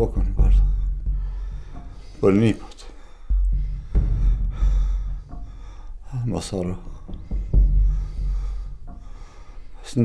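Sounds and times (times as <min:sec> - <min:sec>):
deep low hum: 0:00.0 - 0:09.6
man gasping breathing: 0:02.9 - 0:06.0.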